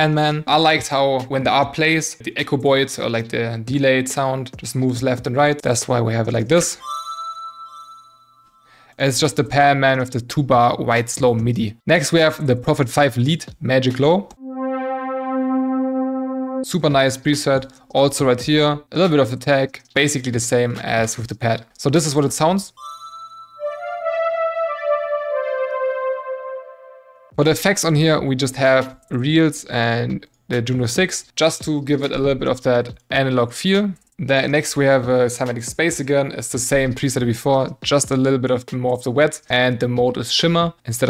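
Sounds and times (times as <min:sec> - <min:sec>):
synthesizer chord: 0:14.4 - 0:16.8, 0:23.6 - 0:27.4.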